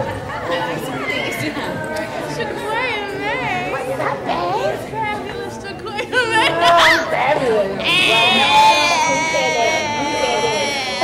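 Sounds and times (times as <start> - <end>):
people talking at once: 0.0 - 11.0.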